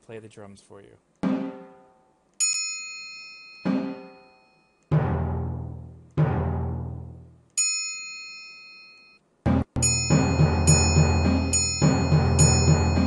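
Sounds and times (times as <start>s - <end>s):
timpani drum strikes: 1.2s - 2.0s, 4.9s - 7.3s, 9.5s - 13.0s
triangle ding: 2.4s - 4.9s, 7.6s - 9.2s, 9.8s - 13.0s.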